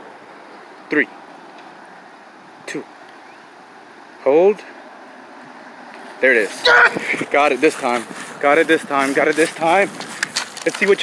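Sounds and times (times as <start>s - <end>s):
outdoor background noise: 0.0s - 11.0s
man counting down: 6.2s - 9.9s.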